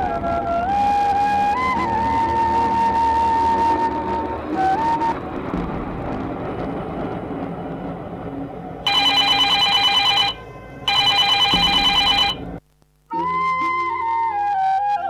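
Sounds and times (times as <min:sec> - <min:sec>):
low rushing noise: 0:04.0 - 0:11.0
telephone ringing: 0:08.9 - 0:12.6.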